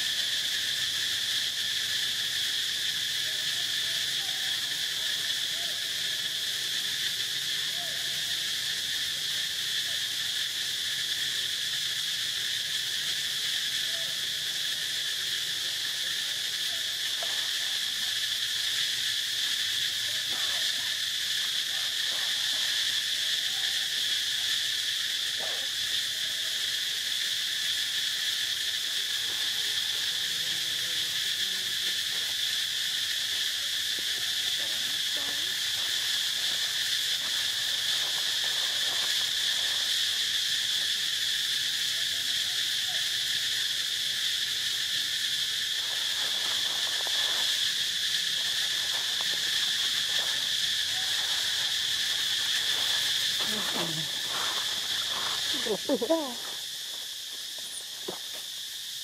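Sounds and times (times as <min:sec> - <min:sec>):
high-pitched insect chorus: 0:00.0 - 0:59.0.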